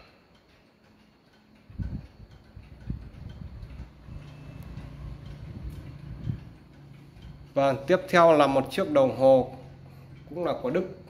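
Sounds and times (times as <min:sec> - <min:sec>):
pendulum clock ticking: 0:00.0 - 0:11.0
dull low thumps: 0:01.7 - 0:07.5.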